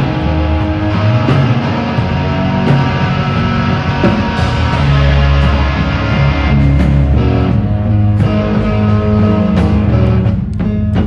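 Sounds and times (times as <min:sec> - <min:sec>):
drums: 0:00.0 - 0:11.0
electric guitars: 0:00.0 - 0:11.0.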